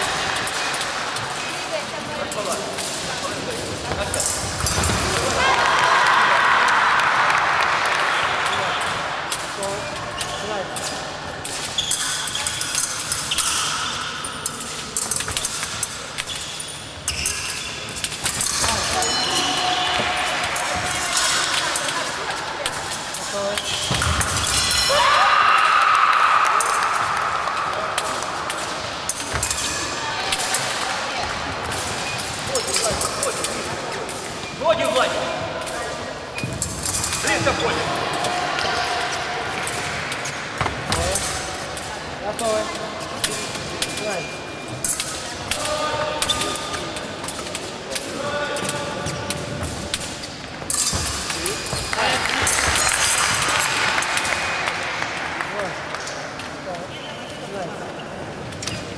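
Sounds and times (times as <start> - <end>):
voices in hall: 0.0 - 58.9.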